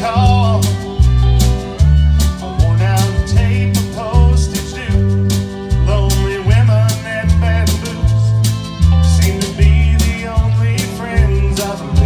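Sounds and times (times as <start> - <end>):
accordion bass line: 0.0 - 12.0
drum kit with cymbal hits: 0.0 - 12.0
lead melody line: 0.0 - 12.0
pedal steel guitar: 0.0 - 12.0.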